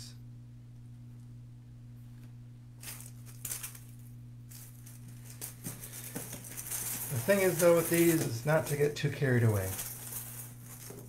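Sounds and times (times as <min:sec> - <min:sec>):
low electrical hum: 0:00.0 - 0:11.0
plastic bag rustling and crinkling: 0:02.8 - 0:11.0.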